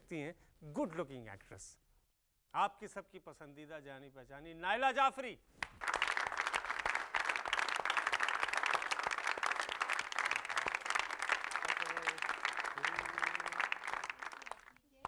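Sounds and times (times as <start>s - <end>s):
crowd applause: 5.7s - 14.8s.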